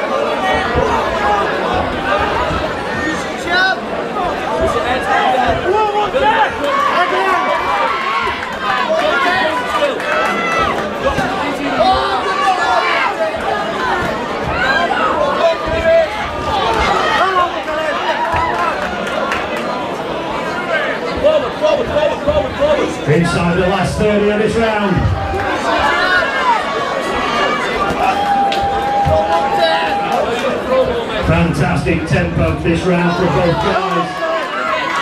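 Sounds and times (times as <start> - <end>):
crowd shouting and chattering: 0.0 - 35.0.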